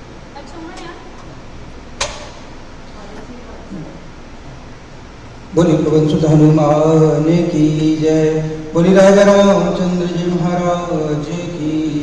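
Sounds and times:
room noise: 0.0 - 12.0
sharp knock: 2.0 - 2.5.

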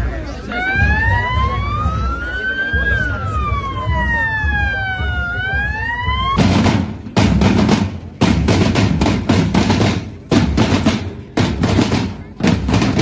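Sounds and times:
crowd walking and talking: 0.0 - 13.0
police siren wailing: 0.3 - 6.4.

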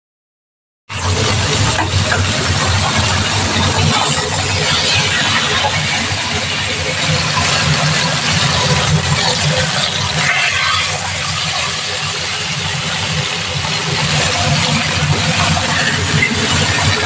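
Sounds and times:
low hum: 0.9 - 17.0
meat sizzling in hot fat: 1.0 - 17.0.

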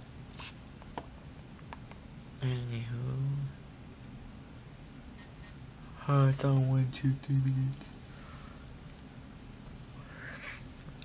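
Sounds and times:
faint room hiss: 0.0 - 11.0
high electronic beeps: 5.2 - 5.6.

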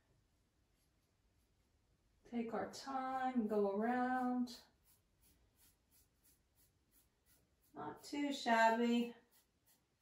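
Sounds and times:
paintbrush strokes on wood: 3.1 - 10.0.

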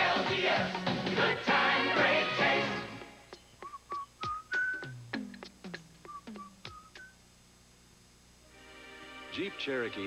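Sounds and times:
whistled tune: 3.4 - 5.2, 6.0 - 7.2.

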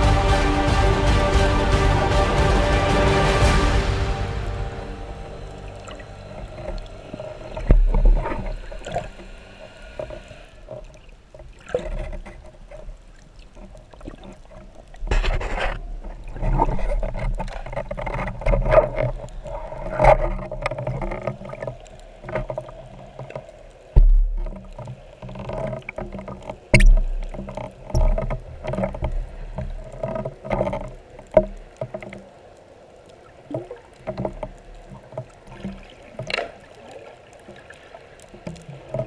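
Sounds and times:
low rumble: 0.0 - 10.1
underwater water noise: 0.0 - 39.0
knocks and thumps: 24.0 - 24.6.

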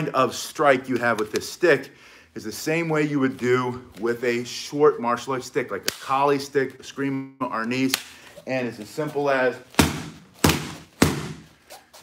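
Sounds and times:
fan striking punching bag: 9.8 - 11.5.

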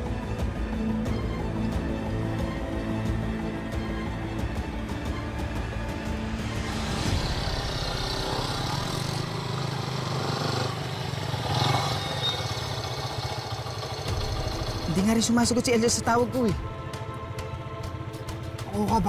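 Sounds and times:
background music: 0.0 - 19.0
small motorcycle engines: 6.6 - 16.6.

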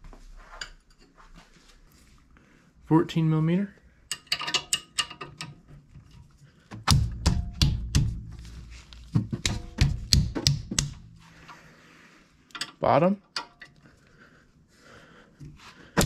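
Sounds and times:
wrench clicking on metal: 4.1 - 5.6.

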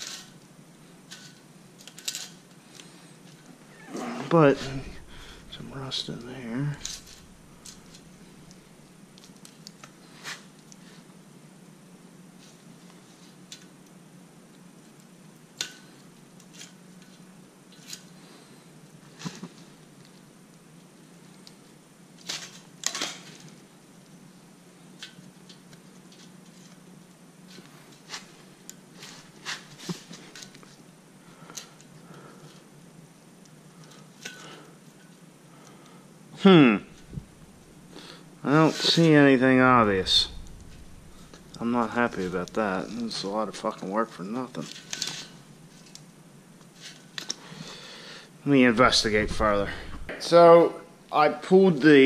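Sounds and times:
faint low hum: 2.2 - 13.6, 25.8 - 52.0.

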